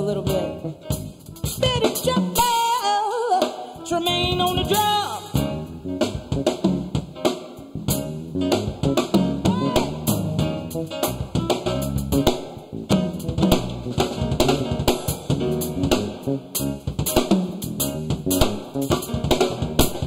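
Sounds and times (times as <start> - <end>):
drum kit groove: 0.0 - 20.0
live band playing: 0.0 - 20.0.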